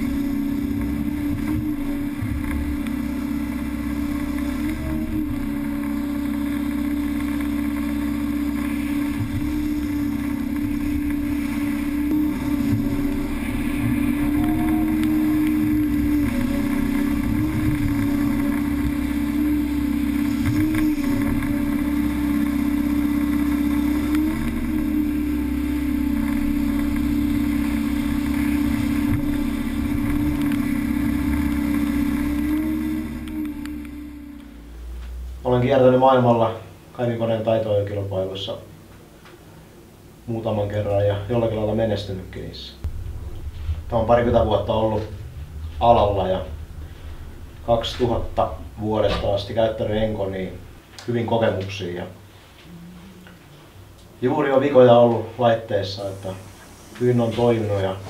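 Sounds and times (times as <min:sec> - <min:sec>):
excavator engine and hydraulics: 0:00.0 - 0:37.0, 0:40.8 - 0:58.0.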